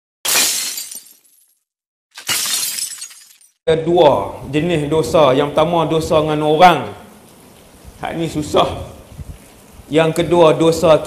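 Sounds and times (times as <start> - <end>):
glass shattering crash: 0.2 - 3.6.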